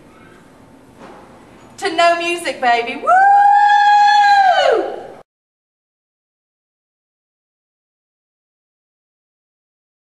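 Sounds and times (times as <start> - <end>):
woman shouting woo: 3.0 - 5.2.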